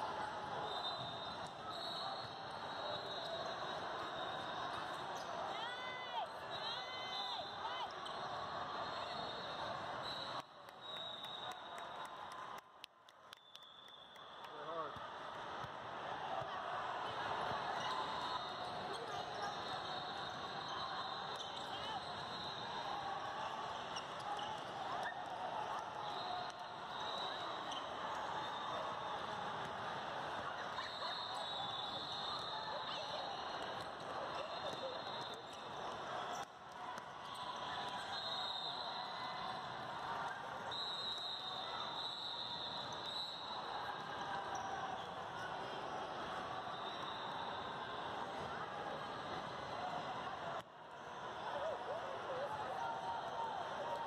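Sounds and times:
hubbub of many voices: 0:00.0 - 0:13.6, 0:14.4 - 0:54.0.

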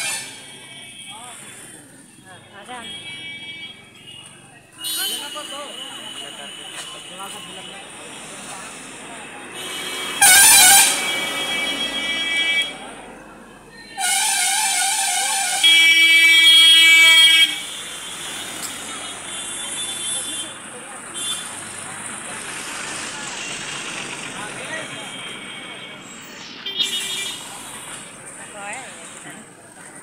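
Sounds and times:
vehicle horns: 0:00.0 - 0:08.8, 0:09.4 - 0:13.1, 0:13.8 - 0:21.8, 0:23.4 - 0:28.1
street traffic noise: 0:00.0 - 0:30.0.

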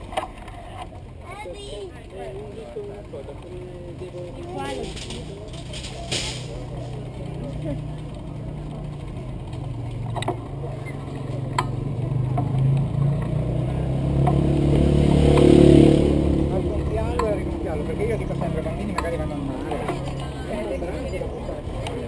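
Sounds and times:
crowd voices: 0:00.0 - 0:22.0.

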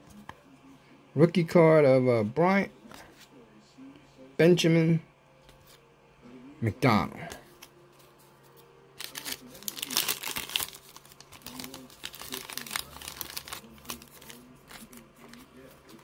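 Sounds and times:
foil wrapper crinkling: 0:09.0 - 0:16.0.

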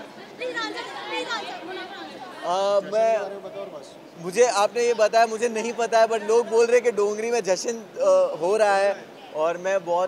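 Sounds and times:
voices talking over one another: 0:00.0 - 0:10.0.

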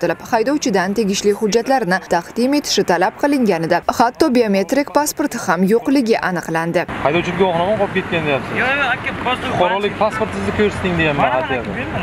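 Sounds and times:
people talking: 0:00.0 - 0:12.0
street background hum: 0:00.0 - 0:12.0.

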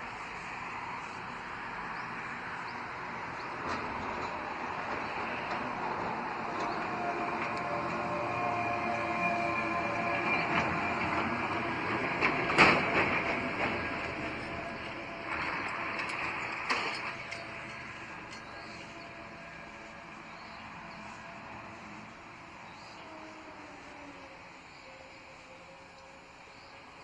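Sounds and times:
diesel engine: 0:00.0 - 0:27.0.

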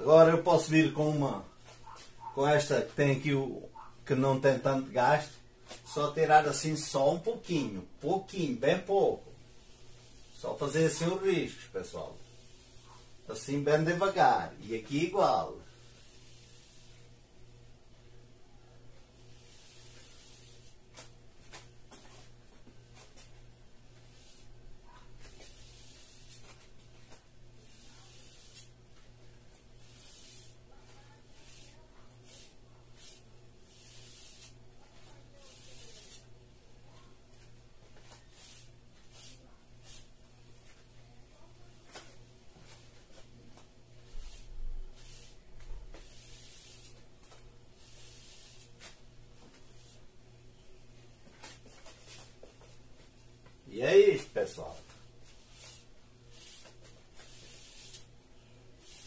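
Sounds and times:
sponge swishing over wet paint: 0:15.7 - 0:17.3, 0:19.2 - 0:23.4, 0:24.0 - 0:36.3, 0:37.4 - 0:40.8, 0:42.0 - 0:50.1, 0:54.2 - 0:59.0.

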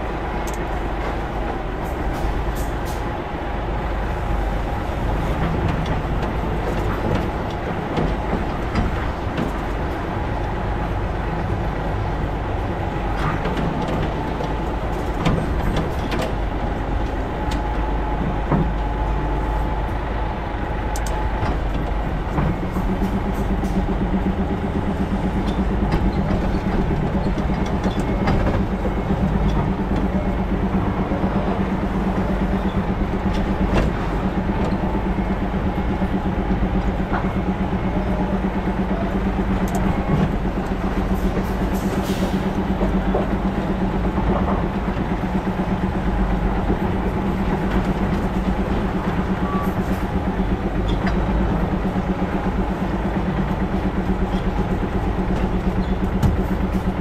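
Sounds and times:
diesel truck engine running: 0:00.0 - 0:57.0.

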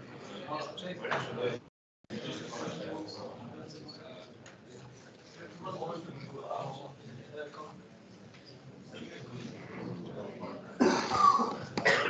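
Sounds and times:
person coughing: 0:10.8 - 0:12.0.

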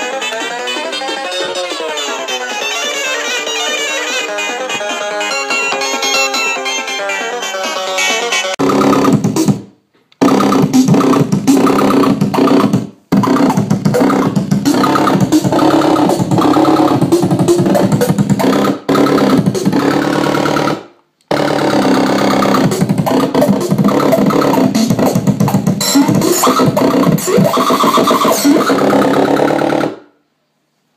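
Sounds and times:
glitchy electronic toy tones: 0:05.1 - 0:09.3, 0:10.2 - 0:20.8, 0:21.4 - 0:29.9.

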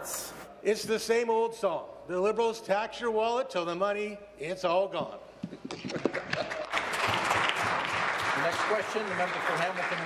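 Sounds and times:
people applauding: 0:05.8 - 0:10.0.

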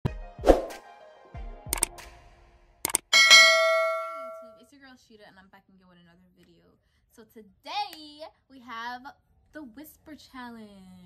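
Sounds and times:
bell-like ding chime: 0:03.1 - 0:04.6.

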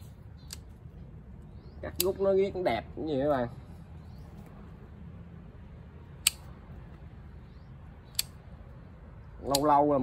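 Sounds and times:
low steady background hum: 0:00.0 - 0:10.0
pruning scissors snipping branches: 0:01.8 - 0:02.3, 0:09.4 - 0:10.0.

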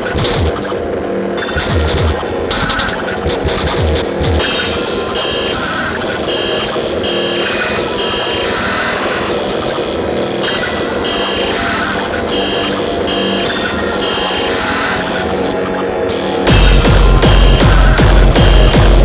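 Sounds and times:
noisy hardcore electronic music: 0:00.0 - 0:19.0.

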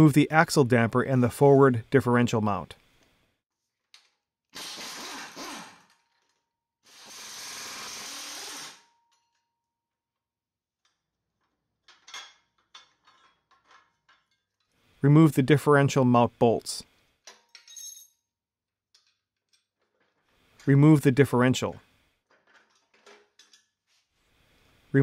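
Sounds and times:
power wrench running: 0:04.6 - 0:06.0, 0:06.9 - 0:08.9.

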